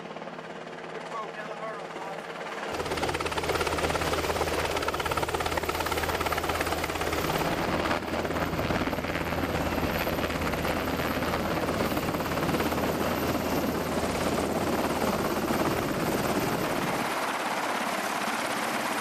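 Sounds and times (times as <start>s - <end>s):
helicopter engine noise: 0.0s - 19.0s
helicopter rotor beating: 0.0s - 19.0s.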